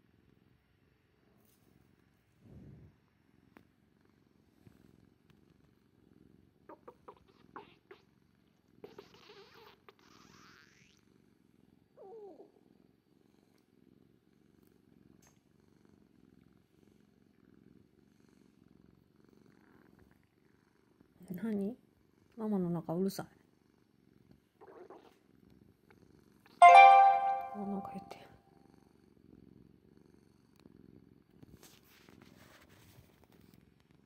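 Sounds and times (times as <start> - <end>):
cat purring: 0.0 - 26.6, 28.7 - 34.0.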